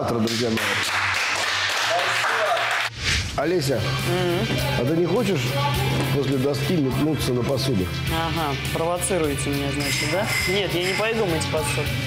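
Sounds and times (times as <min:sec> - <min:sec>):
small group clapping: 0:00.1 - 0:03.0.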